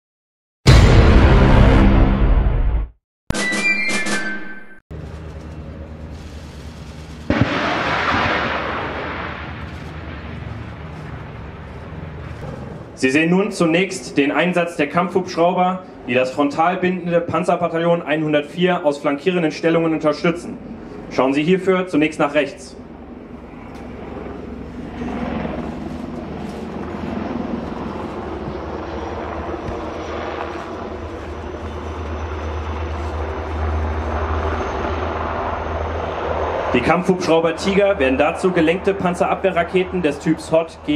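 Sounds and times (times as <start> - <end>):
hovering helicopters rumble: 4.9 - 40.9
rocket rushing noise: 6.3 - 10.8
rocket launch blast: 7.2 - 10.7.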